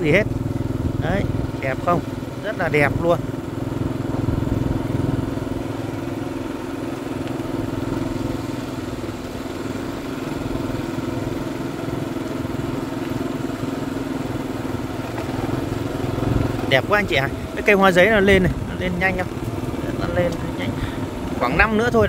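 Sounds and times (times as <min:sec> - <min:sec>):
motorbike engine humming: 0:00.0 - 0:22.0
road noise: 0:00.0 - 0:22.0.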